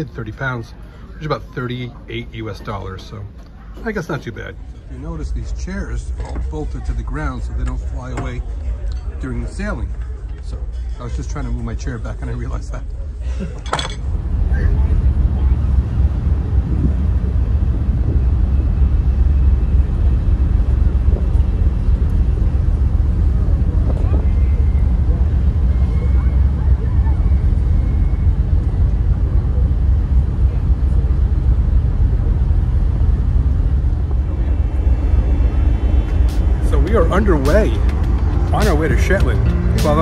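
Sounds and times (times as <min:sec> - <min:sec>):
ship engine rumble: 0:00.0 - 0:40.0
wind buffeting microphone: 0:14.1 - 0:39.7.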